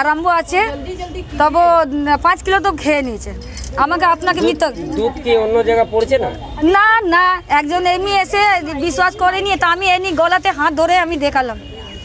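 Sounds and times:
woman speaking: 0:00.0 - 0:05.0, 0:06.6 - 0:11.6
faint metallic jingle: 0:02.8 - 0:05.2, 0:07.8 - 0:09.0.

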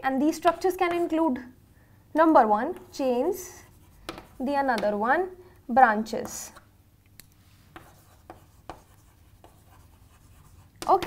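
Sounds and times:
chalk scratching on chalkboard: 0:02.8 - 0:04.7, 0:07.5 - 0:11.0
chalk tapping on board: 0:03.7 - 0:05.0, 0:07.7 - 0:11.0.

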